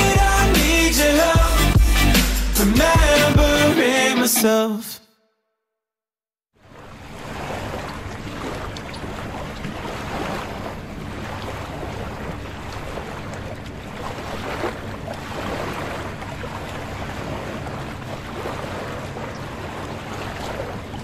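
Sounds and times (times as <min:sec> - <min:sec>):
waves washing: 0:06.6 - 0:21.0.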